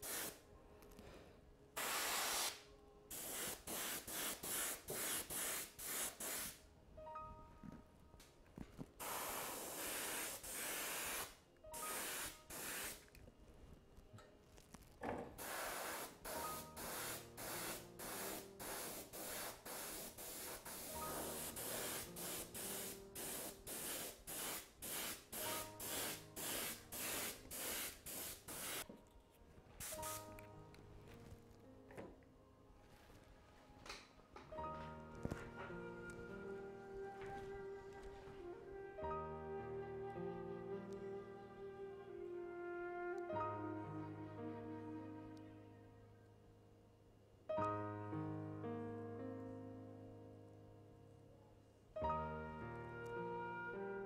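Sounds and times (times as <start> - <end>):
airbrush spraying bursts of hiss: 0.0 - 0.4, 1.8 - 6.6, 9.0 - 13.0, 15.4 - 28.8, 29.8 - 30.3.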